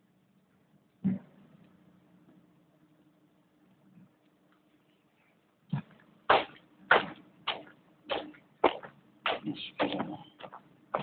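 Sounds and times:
footsteps scuffing on dirt: 0:06.3 - 0:11.0.

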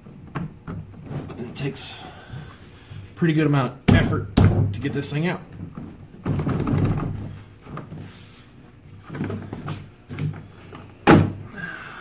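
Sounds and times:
knocks: 0:03.9 - 0:04.8
loud thunk: 0:11.0 - 0:11.4.

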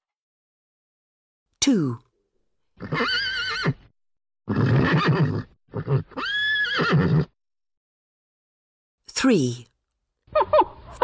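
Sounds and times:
horse whinnying: 0:02.8 - 0:03.9, 0:04.5 - 0:07.4.

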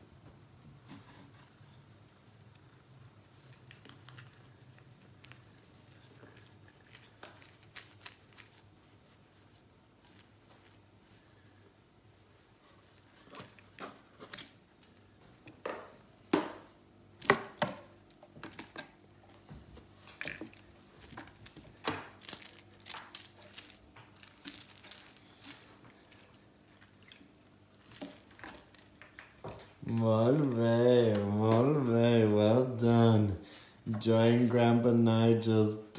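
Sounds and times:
scratching rustling and crinkling: 0:00.6 - 0:11.5, 0:12.1 - 0:15.6, 0:17.8 - 0:32.0.

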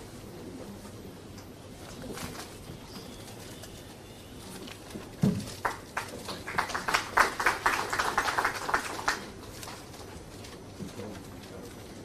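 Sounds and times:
people clapping: 0:05.3 - 0:10.1.

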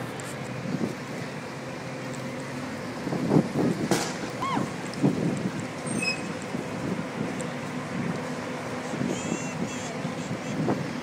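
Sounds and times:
bus engine hum: 0:00.0 - 0:11.0.

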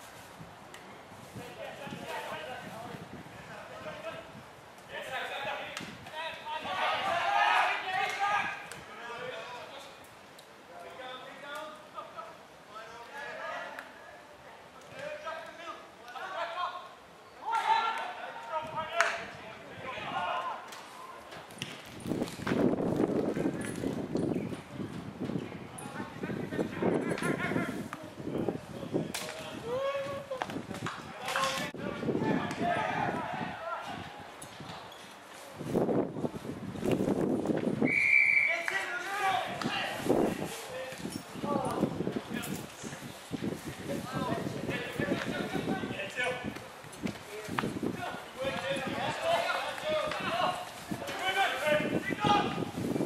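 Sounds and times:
voices shouting and calling: 0:05.0 - 0:09.9, 0:10.9 - 0:21.3, 0:29.2 - 0:34.3.

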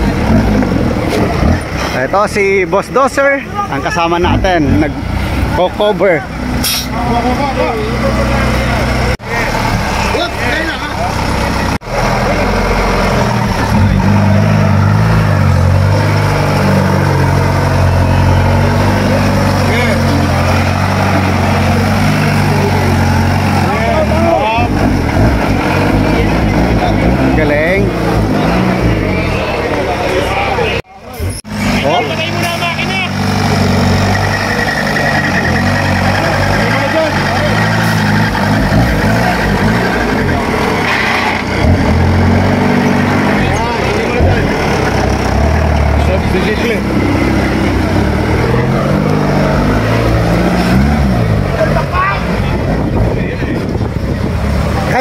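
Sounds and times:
buggy engine revving under load: 0:00.0 - 0:55.0
people's voices: 0:00.0 - 0:55.0.

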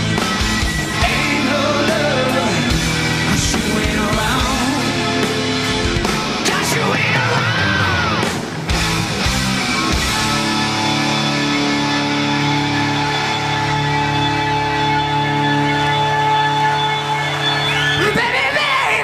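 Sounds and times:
distorted electric guitar: 0:00.0 - 0:19.0
live rock band: 0:00.0 - 0:19.0.

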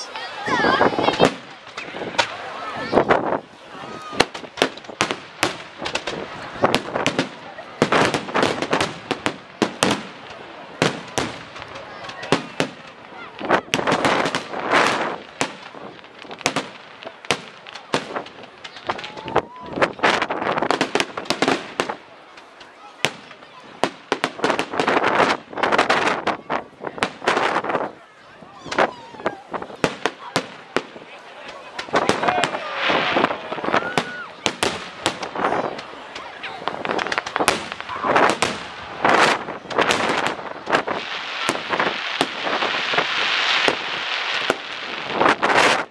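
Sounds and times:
fireworks bangs and crackles: 0:00.0 - 0:45.9.

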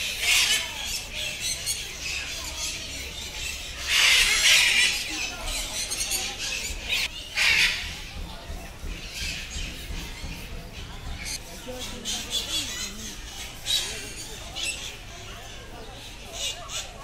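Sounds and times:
parrots screeching: 0:00.0 - 0:07.9.

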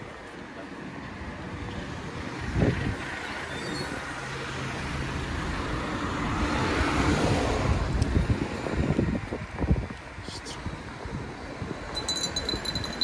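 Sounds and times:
street traffic noise: 0:00.0 - 0:13.0.

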